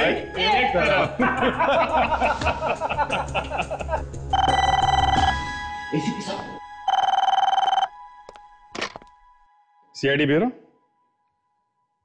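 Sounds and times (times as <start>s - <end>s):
telephone ringing electronic trill: 4.4s - 5.4s, 6.9s - 7.9s.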